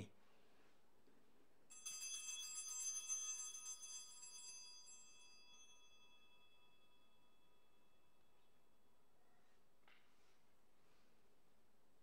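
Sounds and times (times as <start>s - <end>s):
small altar bells ringing: 1.7s - 8.7s.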